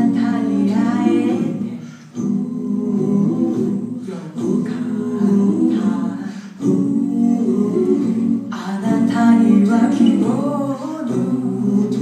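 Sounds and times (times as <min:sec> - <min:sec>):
vocal group singing harmony: 0:00.0 - 0:12.0.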